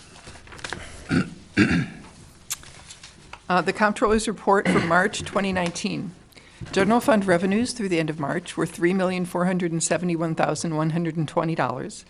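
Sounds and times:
person clearing throat: 1.1s - 2.0s, 4.6s - 5.1s.

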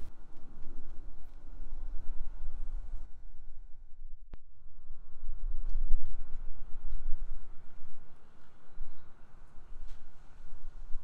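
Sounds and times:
wind buffeting microphone: 0.0s - 3.7s, 4.8s - 11.0s.

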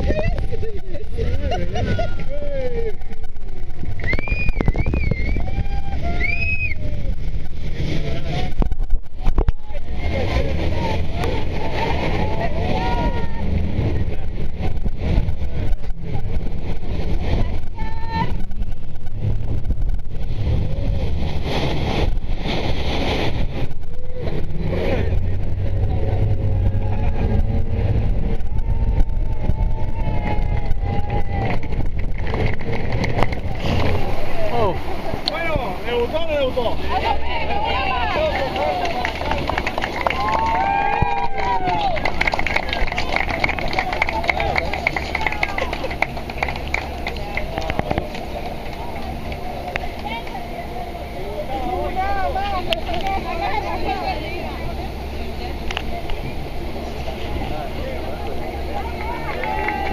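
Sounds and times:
boat engine running: 0.0s - 59.9s
passengers shrieking: 4.0s - 7.1s.

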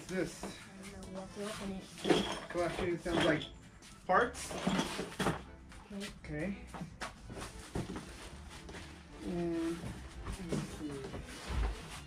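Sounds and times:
cardboard and plastic rustling: 7.2s - 12.0s.

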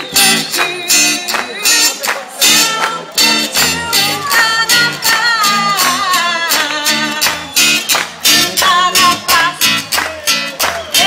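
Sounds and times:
woman singing with ornamented melody: 3.7s - 7.4s.

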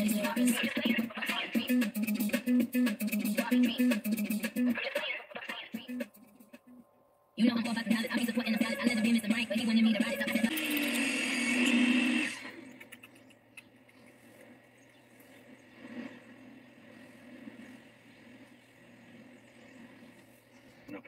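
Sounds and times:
person speaking: 7.4s - 10.8s.

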